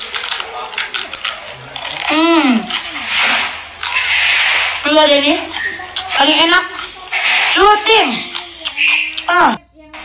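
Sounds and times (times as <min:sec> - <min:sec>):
wet mouth clicks: 0:00.0 - 0:04.8, 0:05.4 - 0:07.2, 0:08.1 - 0:09.4
chewing food: 0:00.0 - 0:09.6.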